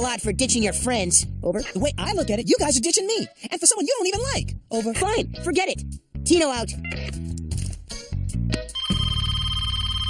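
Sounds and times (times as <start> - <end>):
telephone ringing: 8.8 - 10.0.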